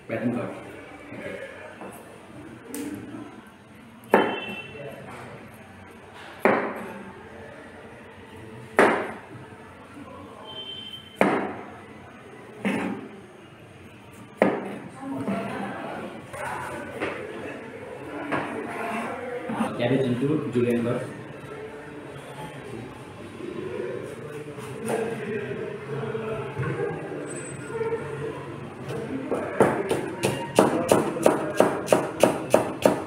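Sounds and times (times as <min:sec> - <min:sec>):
knife chopping on plastic board: 0:29.6 - 0:33.0.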